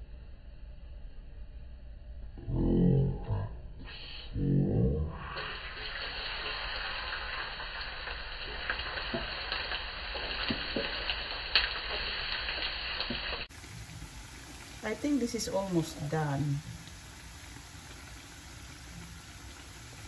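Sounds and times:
garlic sizzling in hot oil: 5.2s - 20.0s.

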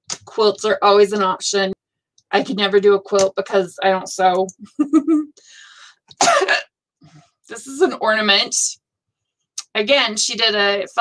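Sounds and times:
woman laughing: 4.6s - 5.4s
woman coughing: 6.2s - 6.7s.

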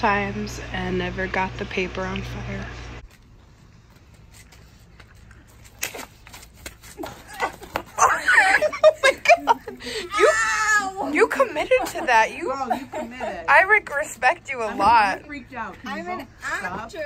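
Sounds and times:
young women laughing and shrieking: 7.2s - 13.4s.

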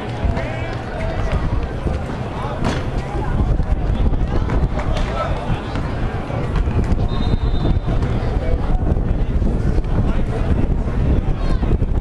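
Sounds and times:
indistinct voices: 0.0s - 12.0s
wind rumble on microphone: 0.0s - 12.0s.

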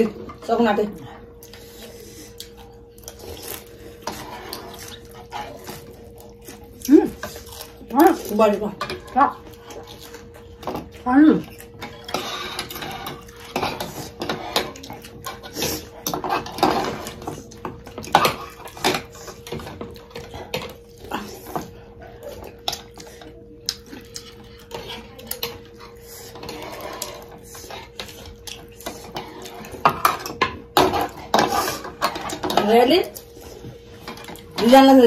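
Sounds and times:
cutlery clinking against bowls: 6.5s - 33.3s.

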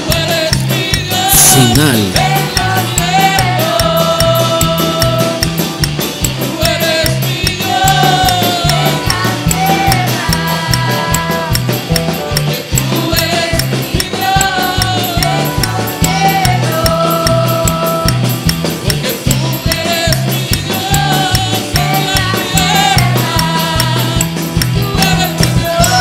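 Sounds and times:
live band playing worship song: 0.0s - 26.0s.

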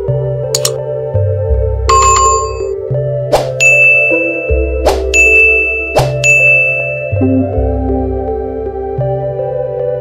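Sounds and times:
bell-like dings: 1.9s - 2.7s, 3.6s - 7.6s
slow sustained music: 2.6s - 10.0s.

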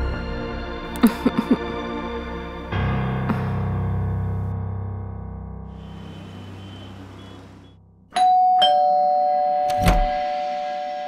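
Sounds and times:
background music: 0.0s - 7.7s, 8.8s - 11.0s
two-note doorbell chime: 8.1s - 11.0s.

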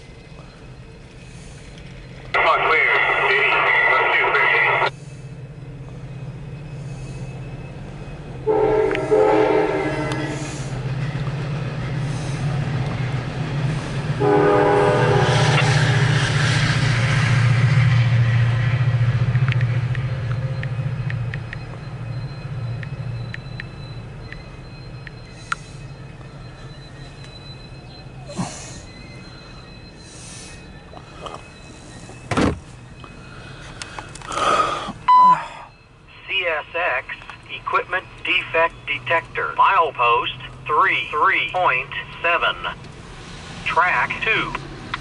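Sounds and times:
rail cars rumbling past: 0.0s - 45.0s
locomotive horn blasts: 8.4s - 10.6s, 14.2s - 16.2s.

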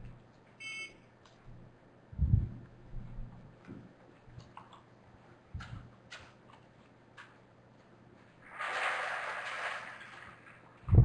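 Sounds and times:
short electronic beep: 0.6s - 1.0s.

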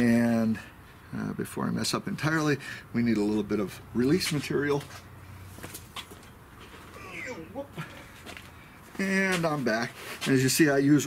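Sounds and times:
footsteps walking away: 4.1s - 10.5s.

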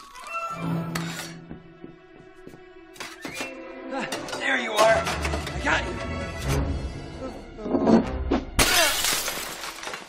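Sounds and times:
music: 0.0s - 9.0s
jar crashing and shattering: 8.6s - 10.0s.

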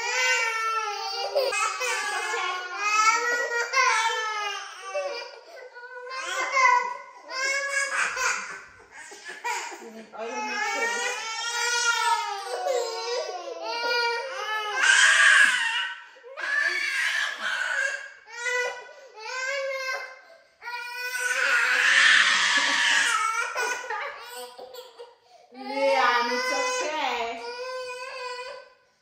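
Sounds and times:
toddler crying: 0.0s - 28.8s.

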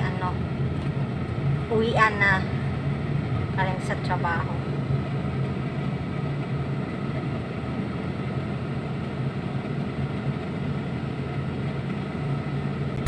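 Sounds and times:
car engine drone: 0.0s - 13.0s
road noise inside car: 0.0s - 13.0s.

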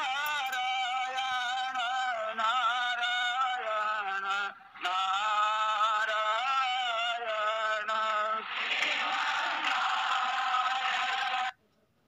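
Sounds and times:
many voices chanting: 4.0s - 11.5s.

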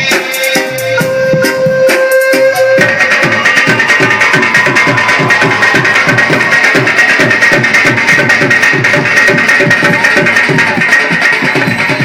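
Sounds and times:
electronic backing music: 0.0s - 9.2s
barrel drums fast beat: 0.0s - 12.0s.

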